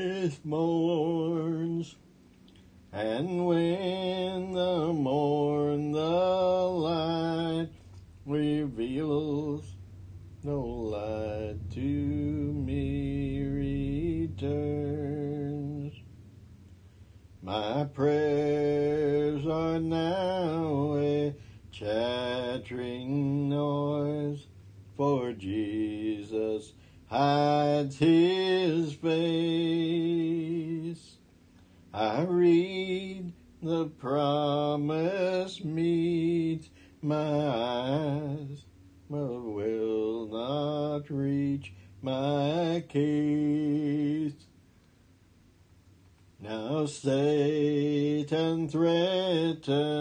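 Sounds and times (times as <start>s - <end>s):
man singing hymn unaccompanied: 0.0s - 2.0s, 2.9s - 16.1s, 17.4s - 31.3s, 31.9s - 44.6s, 46.4s - 50.0s.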